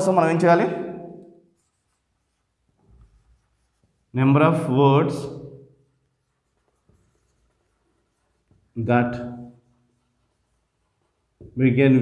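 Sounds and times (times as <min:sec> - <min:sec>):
marker pen writing on whiteboard: 0:01.4 - 0:04.2, 0:05.8 - 0:11.6.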